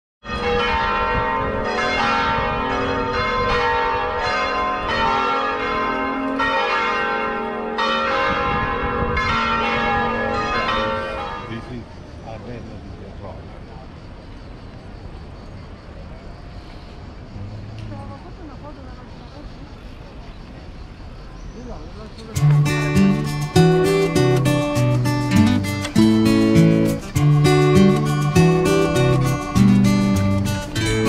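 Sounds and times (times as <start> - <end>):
church bells ringing: 0.2 - 11.9, 22.4 - 31.0.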